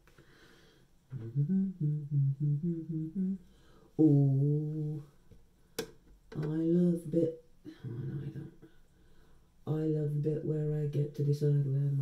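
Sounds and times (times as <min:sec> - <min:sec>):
man humming a tune: 0:01.1 - 0:05.1, 0:06.4 - 0:08.7.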